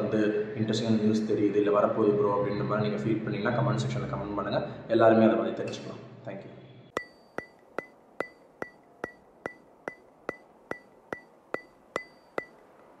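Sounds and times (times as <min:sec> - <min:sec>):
sharp percussive ticks with ping: 0:06.9 - 0:13.0.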